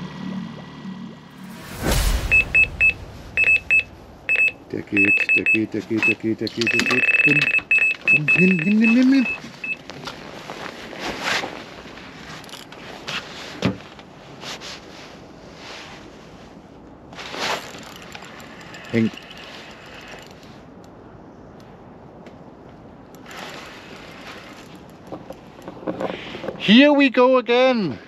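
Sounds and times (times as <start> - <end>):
clothing and tackle rustling: 5.8 - 20.6.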